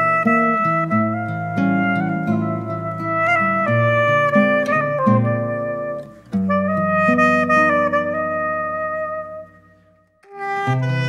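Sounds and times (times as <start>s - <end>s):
acoustic guitar: 0.0s - 9.6s
soprano saxophone melody: 0.0s - 11.0s.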